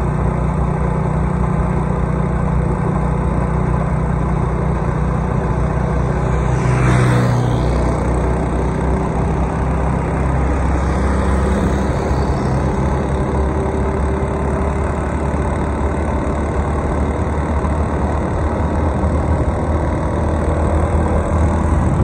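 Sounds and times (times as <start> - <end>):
road and wind noise: 0.0 - 22.0
vehicle engine hum: 0.0 - 22.0.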